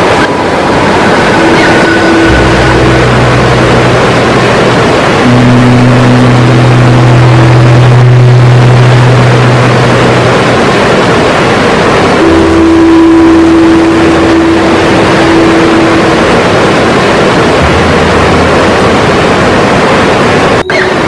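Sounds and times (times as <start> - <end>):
fast river water rushing: 0.0 - 21.0
sustained low droning notes: 0.0 - 21.0.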